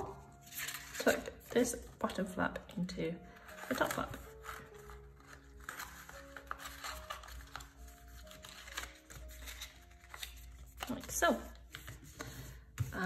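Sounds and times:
paper rustling and crinkling: 0:00.0 - 0:02.0, 0:03.4 - 0:13.0
soft music of slow held notes: 0:00.0 - 0:13.0.

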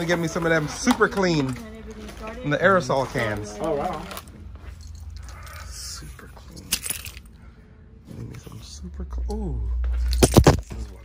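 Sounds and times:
clatter of store items handled: 0:00.0 - 0:08.6, 0:09.7 - 0:11.0
low steady hum: 0:01.6 - 0:11.0.

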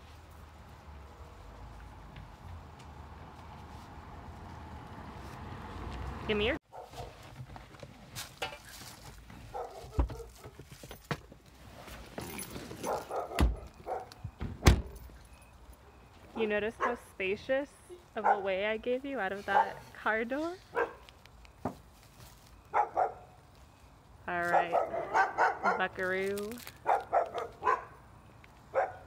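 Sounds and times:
dog barking: 0:06.7 - 0:07.1, 0:09.5 - 0:10.4, 0:12.8 - 0:14.2, 0:18.2 - 0:18.5, 0:20.7 - 0:21.0, 0:22.7 - 0:23.3, 0:24.5 - 0:25.9, 0:26.8 - 0:28.0, 0:28.7 - 0:29.0
clothing rustle and shuffling: 0:21.8 - 0:22.7.

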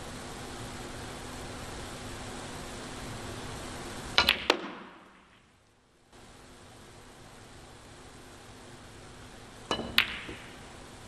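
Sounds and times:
snooker balls clicking: 0:04.2 - 0:05.5, 0:09.7 - 0:10.7.

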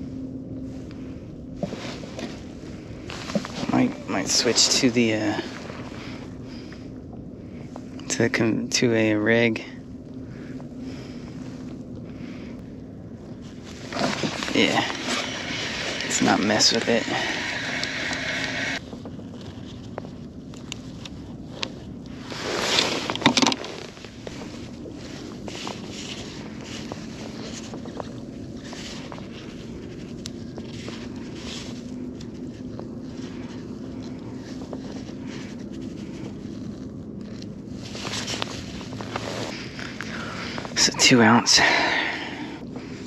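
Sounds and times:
rush of noise: 0:09.3 - 0:18.9, 0:37.8 - 0:43.0.

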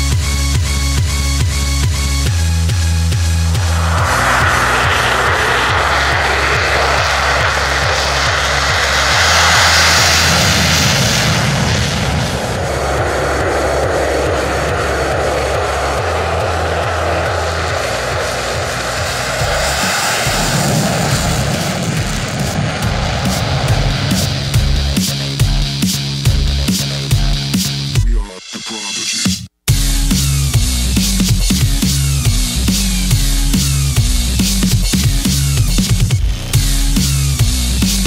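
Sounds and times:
music: 0:00.0 - 0:06.8, 0:22.9 - 0:38.0
jet engine roaring: 0:02.3 - 0:25.8.

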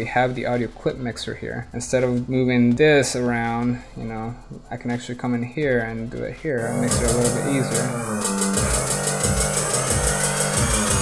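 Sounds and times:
held synth tones: 0:06.6 - 0:11.0
kick drum pulse: 0:06.6 - 0:11.0
noise riser: 0:06.6 - 0:11.0.

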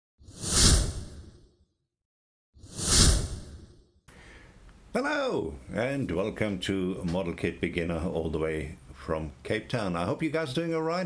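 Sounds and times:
whoosh sound effect: 0:00.3 - 0:01.4, 0:02.6 - 0:03.8.

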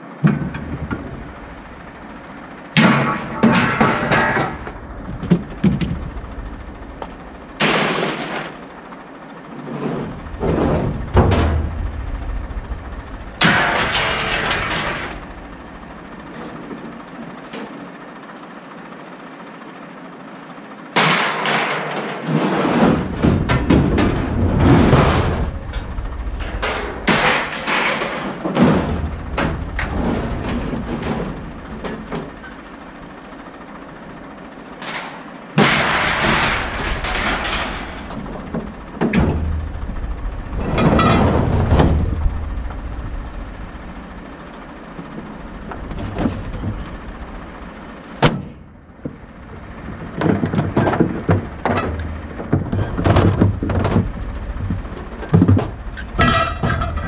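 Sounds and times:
scrap metal clattering onto a pile: 0:02.8 - 0:04.7, 0:07.6 - 0:08.6, 0:13.4 - 0:15.3, 0:21.0 - 0:25.8, 0:26.4 - 0:32.6, 0:34.8 - 0:39.6, 0:40.6 - 0:42.0, 0:52.6 - 0:57.0.

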